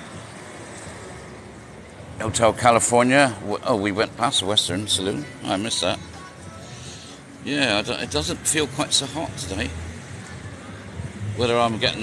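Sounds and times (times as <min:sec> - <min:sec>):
street noise hiss: 0:00.0 - 0:12.0.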